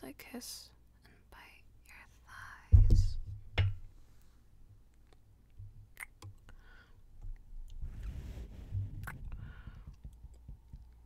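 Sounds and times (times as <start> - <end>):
wet kissing sounds: 6.0 - 6.2.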